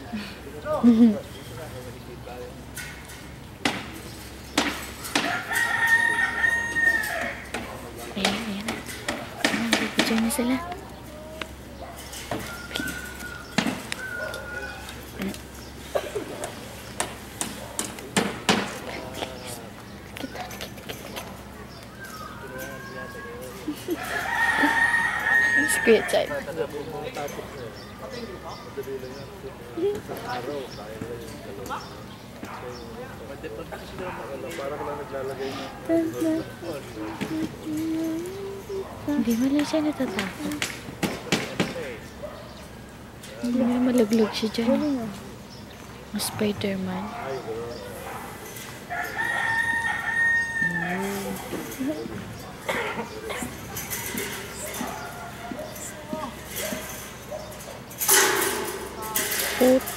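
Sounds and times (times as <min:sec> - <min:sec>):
indistinct voices talking: 0:00.0 - 0:59.9.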